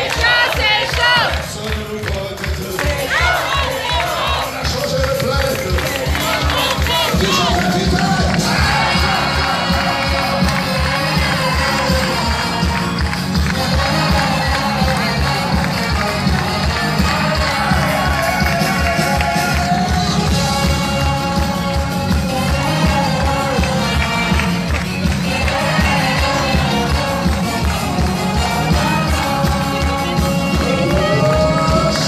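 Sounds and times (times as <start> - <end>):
crowd cheering and clapping: 0.0 - 32.0
live band music with drum beat: 0.1 - 32.0.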